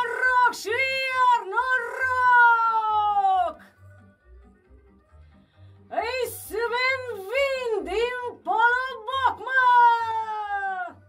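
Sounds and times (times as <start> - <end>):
woman singing a folk song: 5.9 - 10.9.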